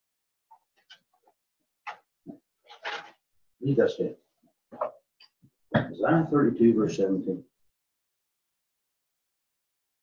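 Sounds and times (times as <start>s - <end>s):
book pages rustling: 2.7s - 3.2s.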